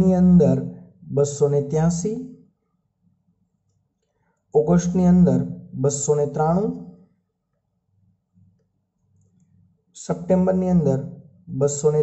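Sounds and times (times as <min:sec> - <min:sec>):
person speaking: 0:00.0 - 0:02.3, 0:04.6 - 0:06.9, 0:10.0 - 0:12.0.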